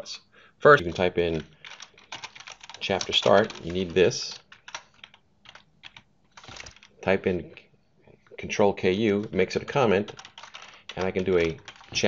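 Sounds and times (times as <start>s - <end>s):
computer keyboard keystrokes: 0.9s - 6.9s, 10.0s - 12.0s.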